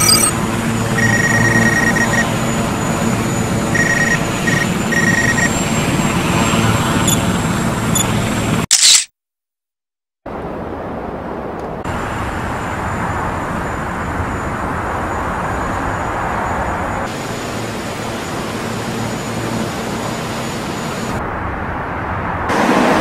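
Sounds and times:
thin high steady whine: 0.0 - 6.0
steady distant roar: 0.0 - 8.6, 10.3 - 23.0.

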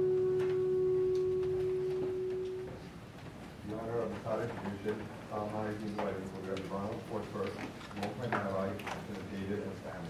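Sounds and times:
steady pure musical tone: 0.0 - 2.8.

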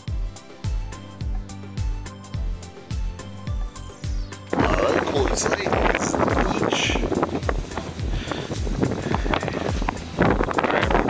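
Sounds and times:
low thumps: 0.7 - 11.0
wind buffeting microphone: 4.5 - 11.0.

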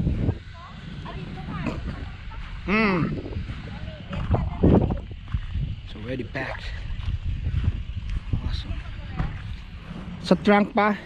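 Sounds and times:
faint voices: 0.0 - 10.5
wind rumbling on microphone: 0.0 - 11.0.

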